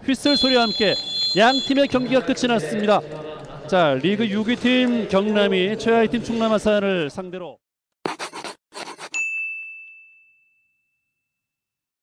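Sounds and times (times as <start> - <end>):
bright ding: 9.2 - 11.2.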